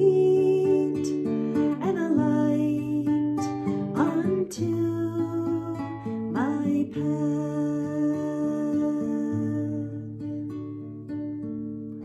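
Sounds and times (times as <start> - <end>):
strummed acoustic guitar: 0.0 - 12.0
woman singing long notes: 4.0 - 10.2.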